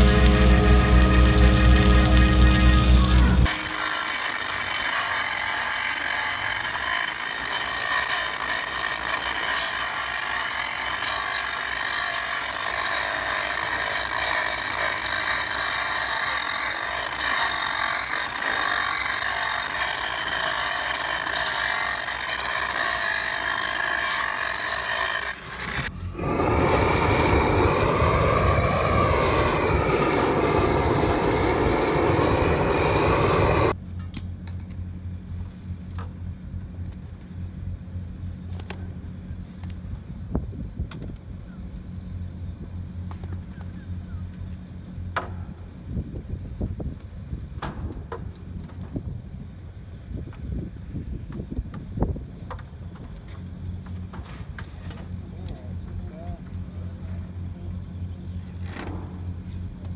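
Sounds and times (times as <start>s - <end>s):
angle grinder grinding steel: 0.0s - 33.8s.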